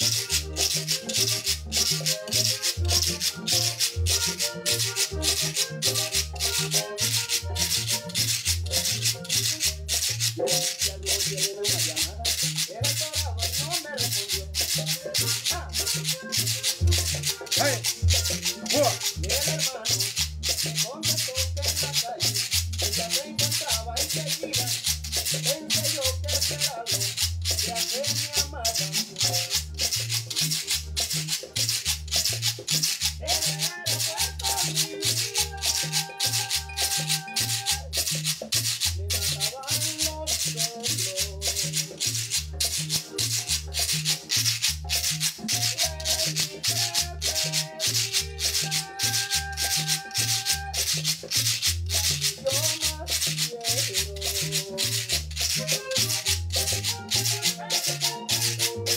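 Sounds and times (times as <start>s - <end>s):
recorded music with bass line: 0.0s - 58.9s
scraper scraped in fast rhythm: 0.0s - 58.9s.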